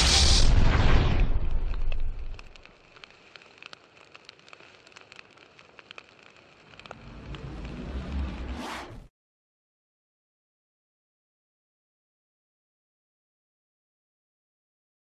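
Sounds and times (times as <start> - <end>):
low explosion-like rumble: 0.0 - 2.6
fire crackling: 0.0 - 9.1
rising whoosh: 6.9 - 9.1.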